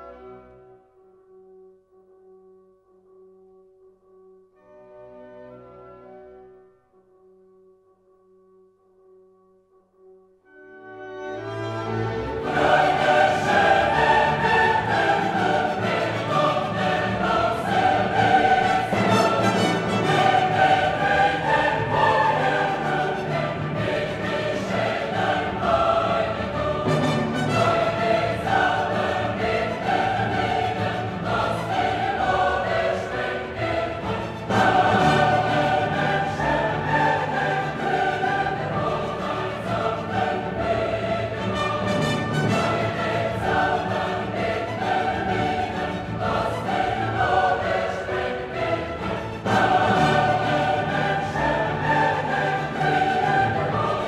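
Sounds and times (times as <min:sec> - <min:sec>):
choir singing with orchestra: 0:10.5 - 0:54.0.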